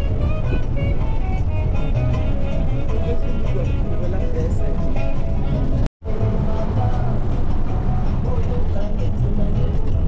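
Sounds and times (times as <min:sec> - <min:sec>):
car rumble from inside: 0:00.0 - 0:10.0
music with singing: 0:00.0 - 0:10.0.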